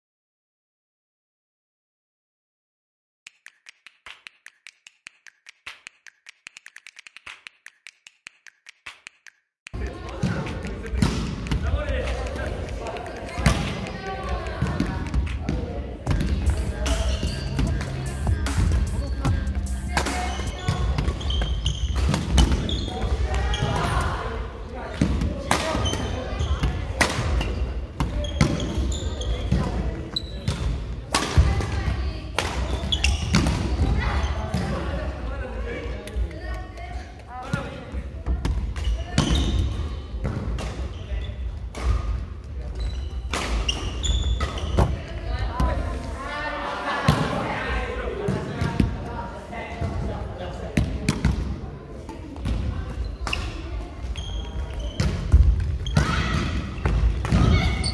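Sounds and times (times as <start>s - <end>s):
voices in a large hall: 9.7s - 57.9s.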